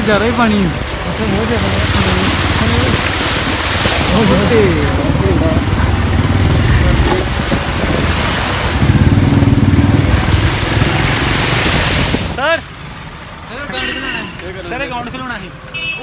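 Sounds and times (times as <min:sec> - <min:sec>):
voices: 0:00.0 - 0:08.0
motorcycle engine running: 0:00.0 - 0:13.6
water churning from wheels: 0:00.0 - 0:15.8
wind rush on microphone: 0:01.6 - 0:12.4.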